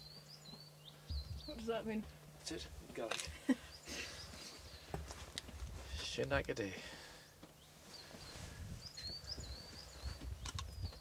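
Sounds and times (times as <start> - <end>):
small bird singing: 0.0 - 2.7, 3.3 - 5.1, 7.0 - 11.0.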